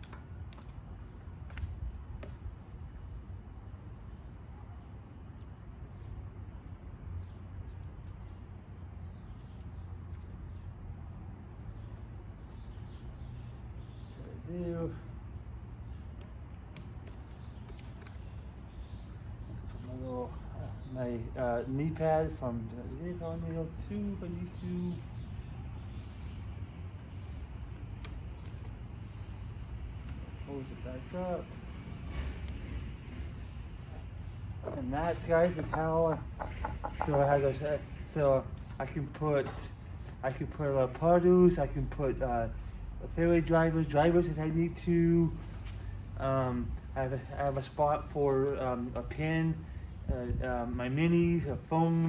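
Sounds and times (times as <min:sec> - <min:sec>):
low outdoor rumble: 0:08.2 - 0:52.0.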